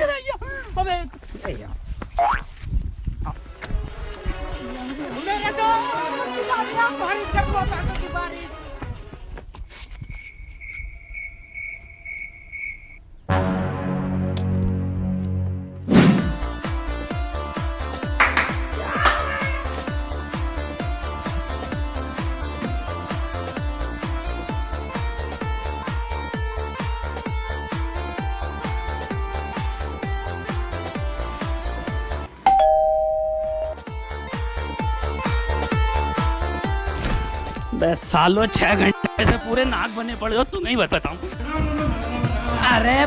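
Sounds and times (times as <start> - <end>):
cricket chirping: 9.9 - 13.2
two-note ding-dong chime: 32.5 - 33.8.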